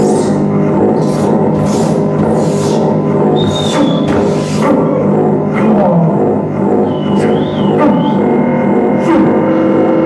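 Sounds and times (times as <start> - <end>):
loud low drone: 0.0 - 10.0.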